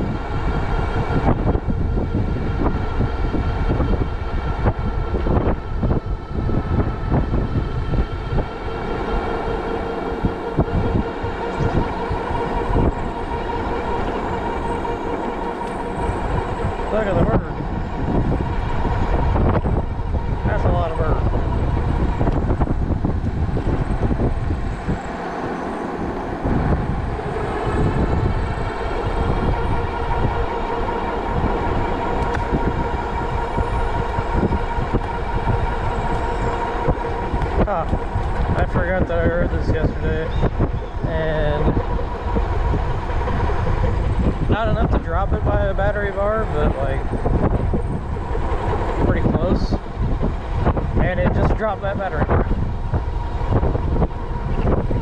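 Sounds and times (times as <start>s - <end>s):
thin electric drive whine: 0.0s - 55.0s
wind buffeting microphone: 0.0s - 55.0s.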